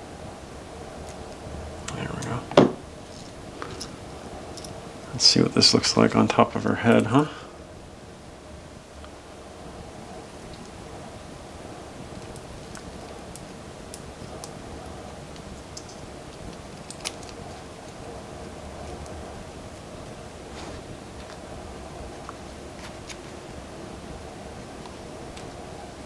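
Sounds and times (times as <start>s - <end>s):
low room hum: 0.0s - 26.0s
small plastic parts clicking: 15.3s - 18.0s.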